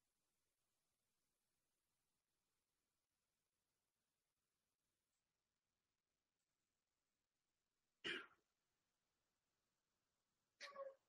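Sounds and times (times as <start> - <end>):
person clearing throat: 8.0 - 8.4.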